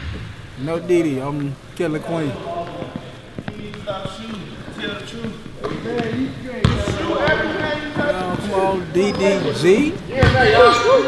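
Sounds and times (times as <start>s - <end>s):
people talking: 0.6s - 11.0s
basketball bouncing on court floor: 2.6s - 10.7s.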